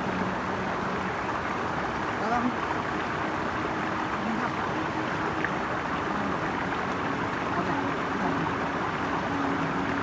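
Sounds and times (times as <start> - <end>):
stream running over rocks: 0.0 - 10.0.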